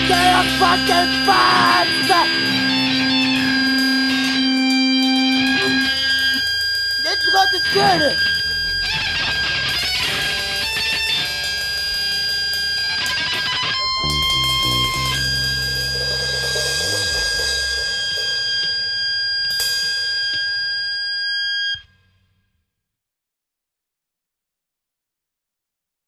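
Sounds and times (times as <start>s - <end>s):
punk rock distorted guitar and bass: 0.0s - 21.8s.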